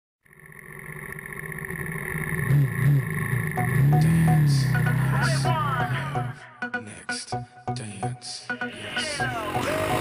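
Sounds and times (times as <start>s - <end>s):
motorcycle engine idling and revving: 0.2s - 6.4s, 9.4s - 10.0s.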